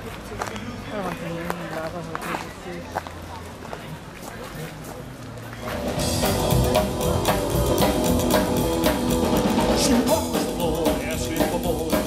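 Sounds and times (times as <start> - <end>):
people talking: 0.0 - 6.3.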